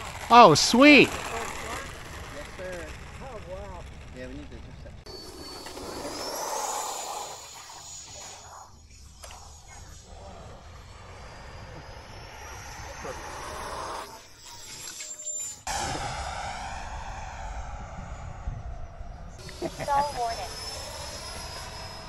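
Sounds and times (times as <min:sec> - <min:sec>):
electric rc jet whining: 0:00.0 - 0:22.0.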